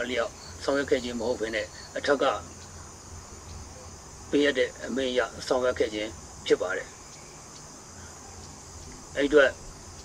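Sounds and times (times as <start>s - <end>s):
man speaking: 0.0s - 2.5s, 4.3s - 6.9s, 9.1s - 9.6s
faint steady hum and hiss: 0.0s - 10.0s.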